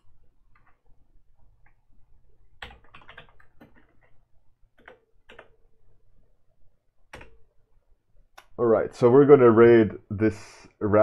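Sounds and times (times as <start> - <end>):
typing on computer keyboard: 2.6 - 4.2, 4.8 - 5.6, 7.1 - 7.4.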